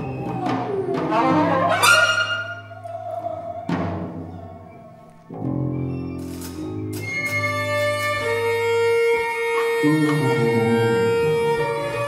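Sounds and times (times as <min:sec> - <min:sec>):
improvising ensemble holding tones: 0:00.0 - 0:12.0.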